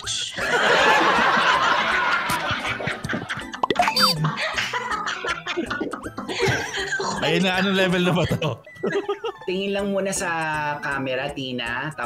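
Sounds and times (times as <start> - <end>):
men laughing heartily: 0.4 - 3.6, 4.2 - 9.4.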